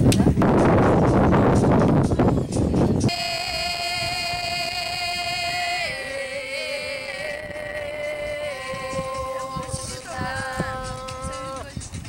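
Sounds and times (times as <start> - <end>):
open-air noise: 0.0 - 12.0
person singing long high note: 3.1 - 11.7.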